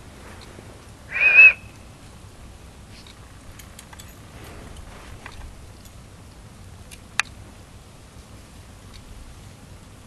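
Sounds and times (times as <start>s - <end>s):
short high whistle: 1.1s - 1.7s.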